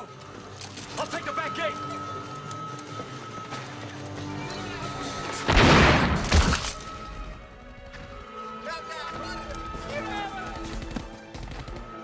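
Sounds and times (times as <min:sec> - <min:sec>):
orchestral action music: 0:00.0 - 0:12.0.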